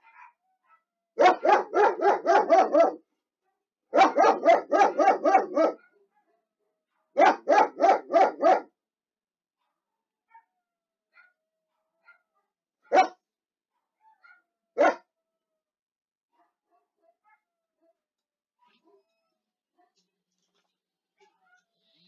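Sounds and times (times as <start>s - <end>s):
dog barking: 0.0s - 3.0s, 3.9s - 8.8s, 9.6s - 10.5s, 11.1s - 15.1s, 16.4s - 18.0s.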